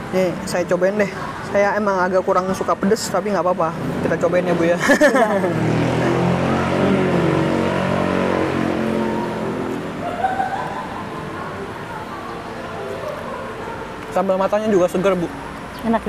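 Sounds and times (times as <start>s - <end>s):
passing vehicle engine: 2.7s - 16.0s
engine note rising: 5.4s - 12.9s.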